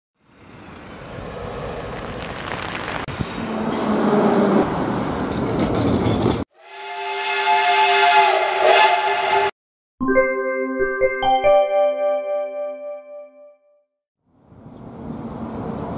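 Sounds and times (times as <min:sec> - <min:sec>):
tram wheels on rails: 0:00.2 - 0:06.4, 0:14.5 - 0:15.9
train horn chord: 0:06.6 - 0:09.5.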